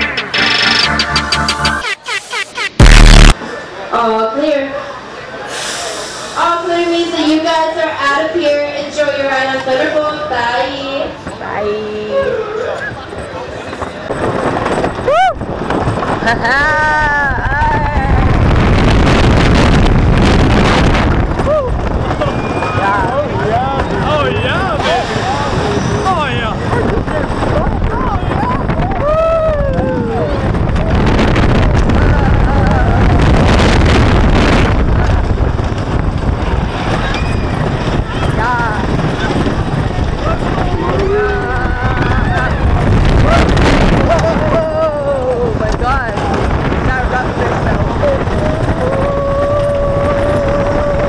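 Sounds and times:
roller coaster rattling on track: 6.2s - 51.0s
wind on microphone: 13.0s - 51.0s
riders yelling and screaming: 21.3s - 33.3s, 36.6s - 51.0s.

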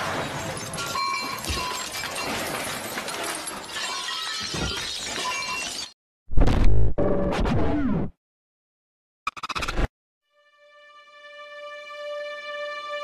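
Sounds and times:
crashing and shattering: 0.0s - 6.0s.

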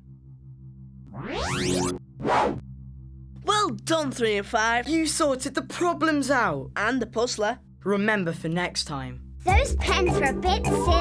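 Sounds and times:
rising electronic sweep: 0.9s - 2.7s.

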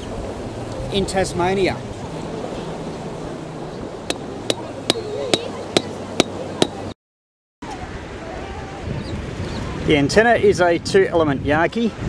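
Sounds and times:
hammer striking a pole: 4.1s - 6.9s.

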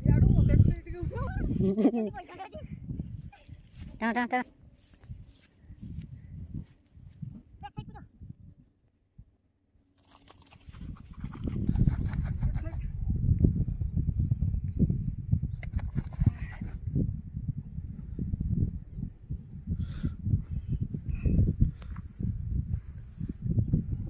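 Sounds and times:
wind rumble on microphone: 0.0s - 9.4s, 10.0s - 24.0s
footsteps through grass: 3.6s - 7.3s.

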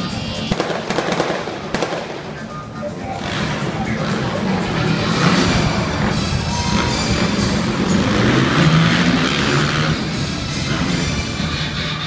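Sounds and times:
loud show music: 0.0s - 12.0s.

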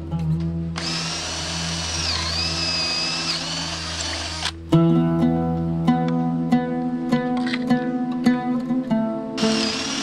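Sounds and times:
plucked-string music: 0.0s - 10.0s
cordless drill whining: 0.8s - 4.6s, 9.4s - 10.0s.

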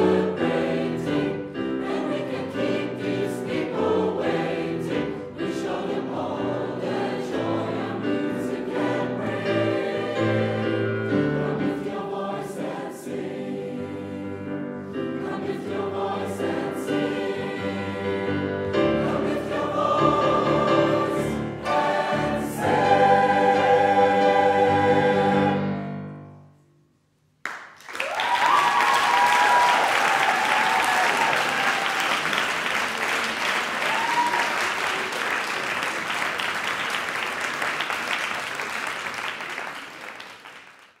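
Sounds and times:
choir singing with piano: 0.0s - 26.5s
audience applause: 27.5s - 41.0s
audience cheering: 27.9s - 35.4s.

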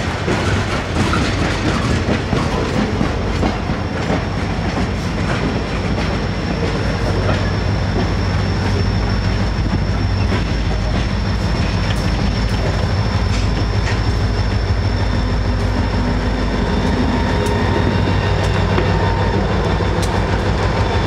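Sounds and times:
diesel locomotive engine: 0.0s - 21.0s
rail noise and wheel clicks: 0.0s - 21.0s.

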